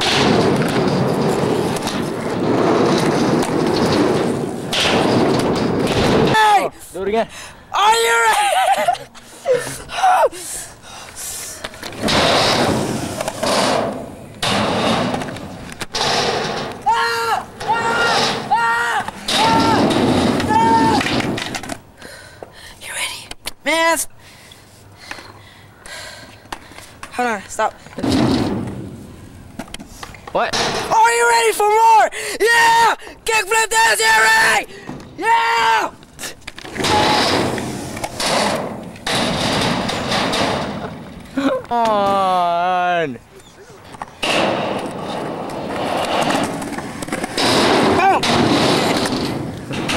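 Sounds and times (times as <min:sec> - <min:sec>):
skateboard wheels rolling on concrete: 0:00.0 - 0:22.6, 0:23.2 - 0:49.9.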